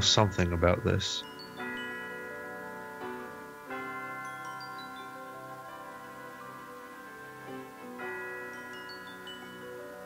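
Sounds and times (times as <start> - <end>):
descending high chime run: 0.0 - 10.0
sustained chime-like music: 0.0 - 10.0.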